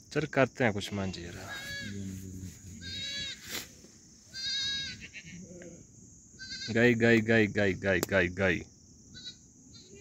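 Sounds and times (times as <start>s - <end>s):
sheep and goats bleating: 0.8s - 3.6s, 4.3s - 5.8s, 6.4s - 7.0s, 9.1s - 10.0s.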